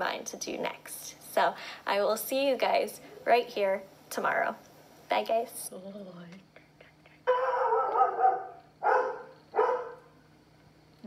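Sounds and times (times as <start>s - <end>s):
dog barking: 7.3s - 10.1s.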